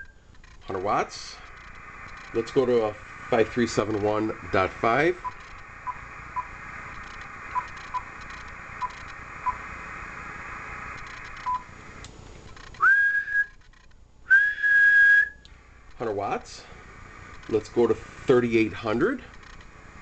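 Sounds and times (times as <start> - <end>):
radio receiver hiss: 0.0 - 20.0
person whistling into microphone: 12.7 - 13.6, 14.3 - 15.4.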